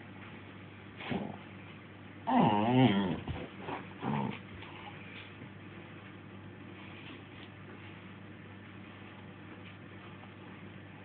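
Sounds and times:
dog grumbling: 1.0 - 1.4, 2.2 - 5.0.

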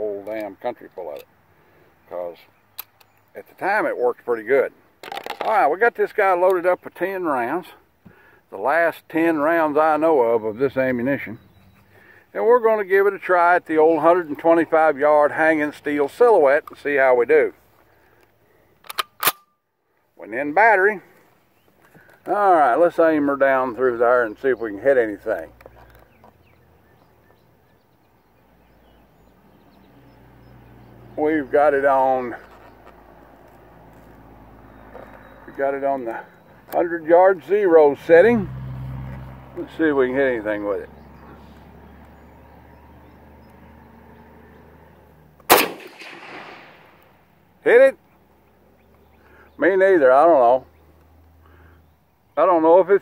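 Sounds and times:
rifle bolt clacking: 18.8 - 19.5, 45.5 - 47.0.

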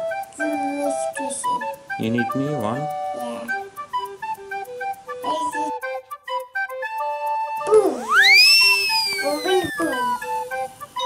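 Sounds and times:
background music: 0.0 - 11.0
magic wand gliding tone: 7.9 - 10.4.

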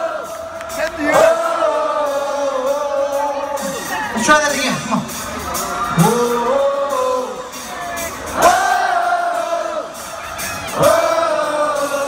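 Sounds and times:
crowd singing and cheering: 0.0 - 12.0.

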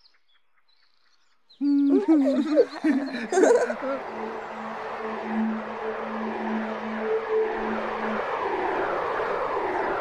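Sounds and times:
rushing swirling noise: 2.1 - 10.0.

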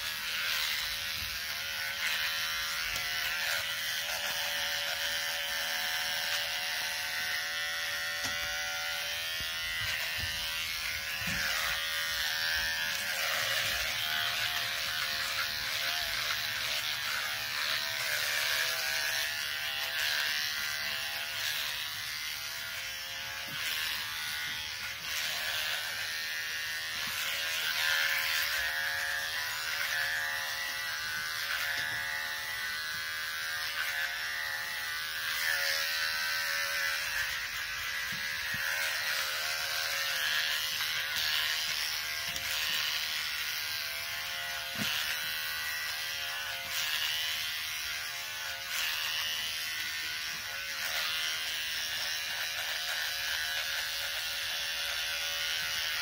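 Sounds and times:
electric shaver buzzing: 0.0 - 56.0.

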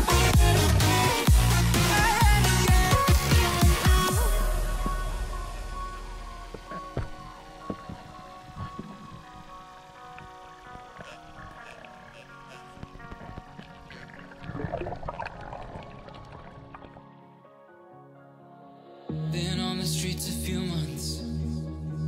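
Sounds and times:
sustained tone background music: 0.0 - 22.0.

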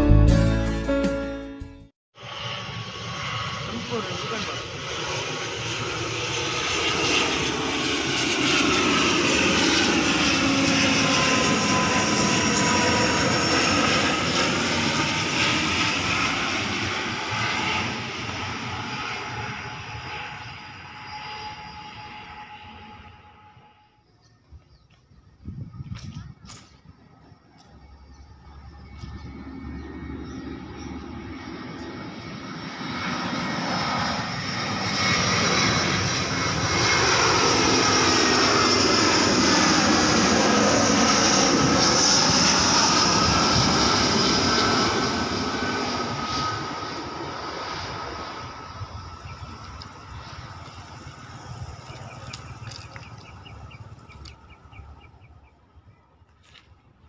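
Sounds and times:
jet airliner approaching: 2.2 - 57.0
turboprop airliner passing overhead: 2.2 - 57.0.

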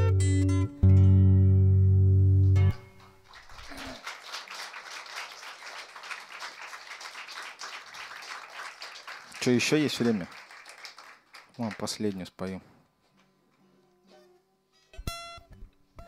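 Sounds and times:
light applause: 2.8 - 12.6.

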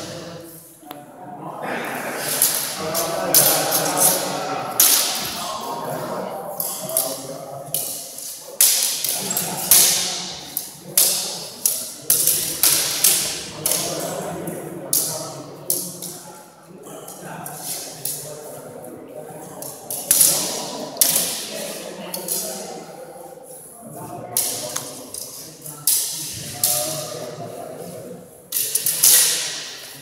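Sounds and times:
steel swords clashing: 4.8 - 5.4, 28.6 - 29.8.

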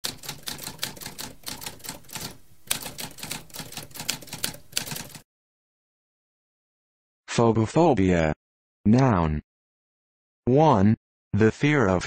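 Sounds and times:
typewriter keys striking: 0.0 - 5.2.

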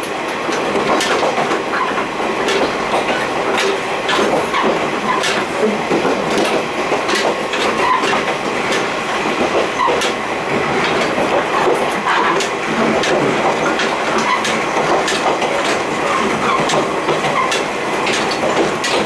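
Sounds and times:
train wheels on rails: 0.0 - 19.0
metal gangway plates clanking: 9.5 - 19.0.

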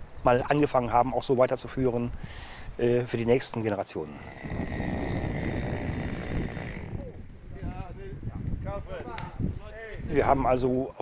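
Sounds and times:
distant chainsaw running: 4.2 - 7.2.

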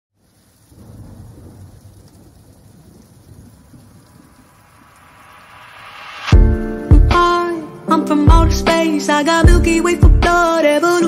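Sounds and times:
rain-like noise: 0.2 - 9.5
low thunder-like rumble: 0.6 - 7.4.

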